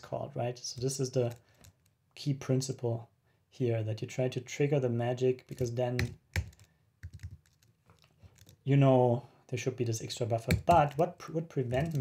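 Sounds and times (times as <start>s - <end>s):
computer keyboard keystrokes: 5.5s - 7.7s.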